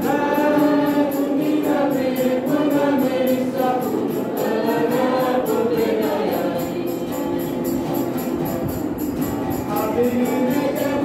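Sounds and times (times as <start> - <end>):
choir singing gospel song: 0.0 - 8.0, 9.7 - 11.0
steady percussion beat: 0.0 - 11.0.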